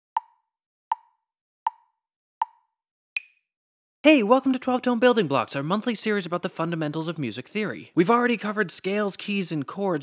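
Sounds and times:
metronome clicks: 0:00.2 - 0:02.6.

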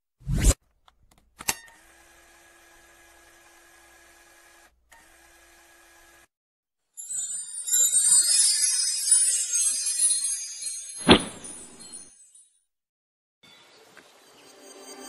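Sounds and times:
jingling chime shimmer: 0:07.0 - 0:12.6.

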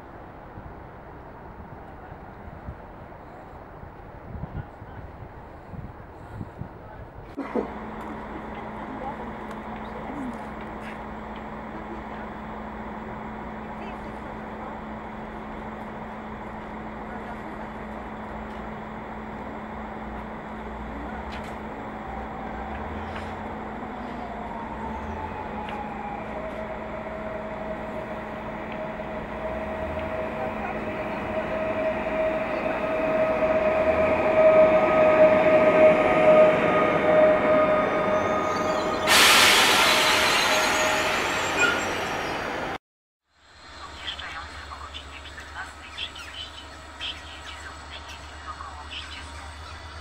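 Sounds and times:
train high whine: 0:07.4 - 0:42.8, 0:43.4 - 0:50.0
electric train approaching: 0:07.6 - 0:42.8, 0:43.4 - 0:50.0
loud air hiss: 0:38.9 - 0:40.7.

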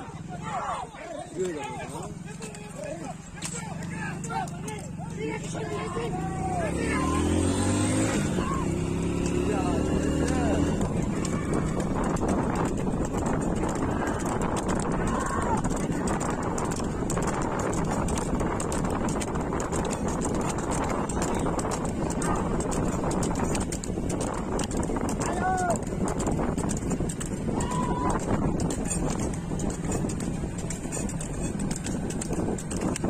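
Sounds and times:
cart wheels rolling: 0:00.0 - 0:33.0
hooves clattering on pavement: 0:00.0 - 0:33.0.

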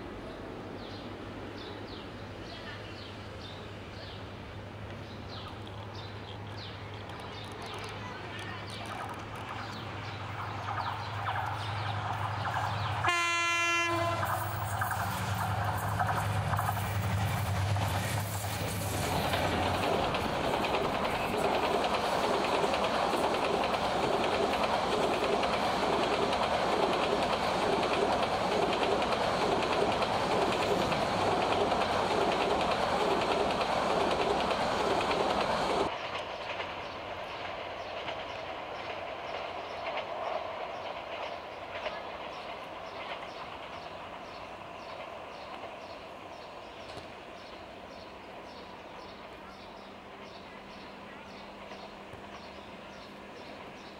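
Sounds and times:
distant train rumble: 0:00.0 - 0:53.9
train wheels clicking over rail joints: 0:04.8 - 0:53.9
locomotive horn: 0:13.0 - 0:14.5.

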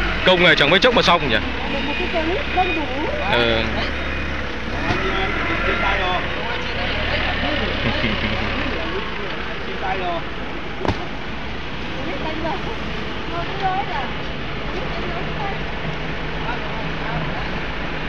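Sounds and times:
people talking: 0:00.0 - 0:04.2, 0:04.8 - 0:11.2, 0:11.8 - 0:15.7, 0:16.4 - 0:17.7
vehicle engine idling: 0:00.0 - 0:18.0
sharp knock: 0:10.8 - 0:11.2.

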